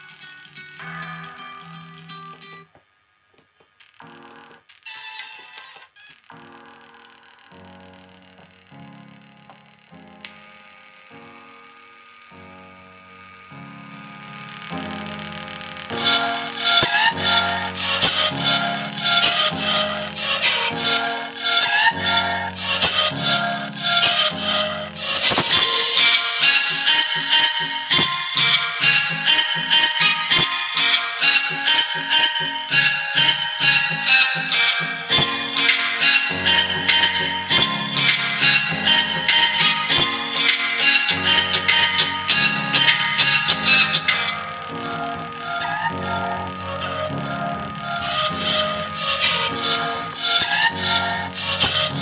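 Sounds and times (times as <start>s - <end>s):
plucked-string music through speakers: 0.0s - 2.7s.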